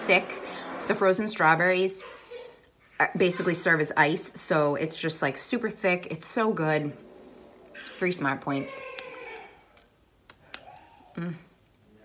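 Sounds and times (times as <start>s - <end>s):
mouth clicks: 9.0s - 11.4s.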